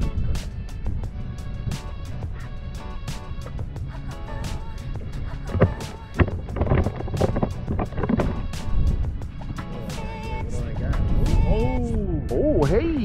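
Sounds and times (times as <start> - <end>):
boat engine rumble: 0.0 - 12.9
music with steady beat: 0.0 - 13.0.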